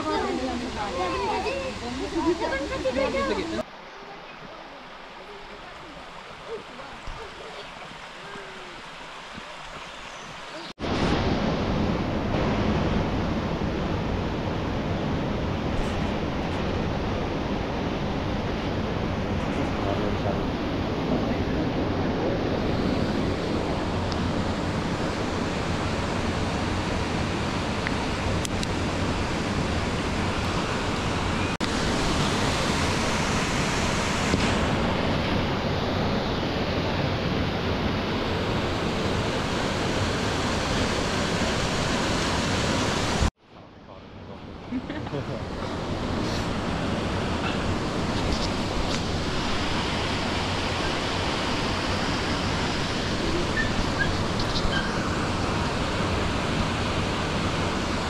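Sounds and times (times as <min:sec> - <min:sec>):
river and waterfall rushing: 0:00.0 - 0:43.4, 0:44.1 - 0:58.0.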